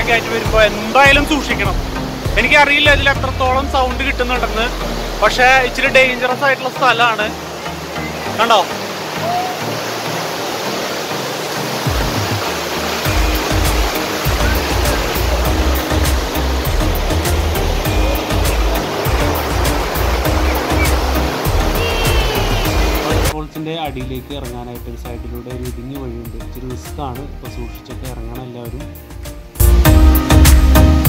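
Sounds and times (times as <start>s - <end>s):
waterfall rushing water: 0.0s - 23.4s
music with heavy bass beat: 13.1s - 23.4s, 29.3s - 31.0s.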